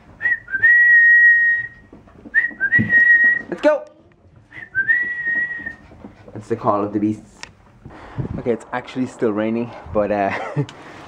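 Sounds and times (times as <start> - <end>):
person whistling: 0.2 - 3.5, 4.5 - 5.8.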